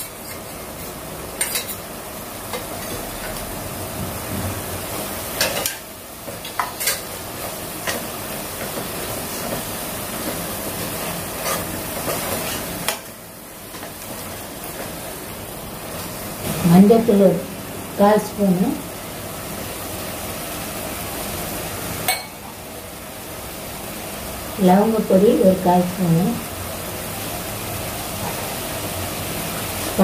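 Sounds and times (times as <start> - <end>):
masala sizzling in a pan: 0.0 - 30.0
spatula scraping a pan: 10.9 - 12.8.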